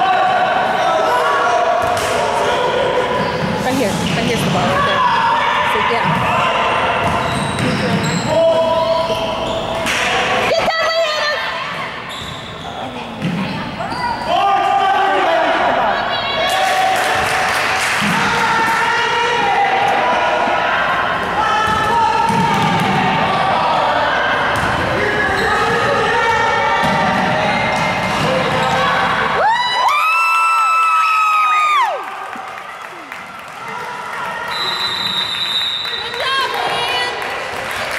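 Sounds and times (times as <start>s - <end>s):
shouting voices echoing: 0.0s - 13.0s, 13.8s - 29.5s.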